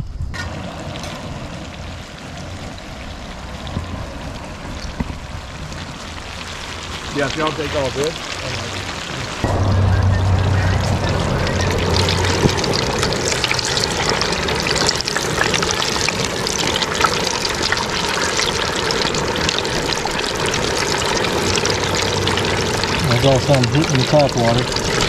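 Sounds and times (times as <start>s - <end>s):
fish deep-frying in oil: 0.4s - 25.0s.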